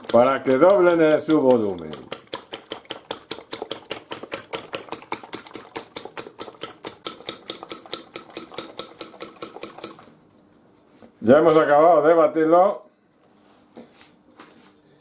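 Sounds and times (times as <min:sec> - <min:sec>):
fork beating eggs on plate: 0:00.0 - 0:10.1.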